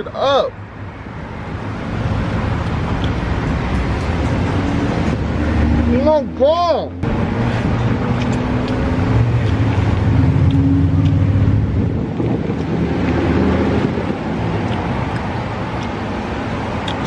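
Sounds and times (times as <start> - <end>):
vehicle engine humming: 0.6 - 17.0
wind on microphone: 9.1 - 15.5.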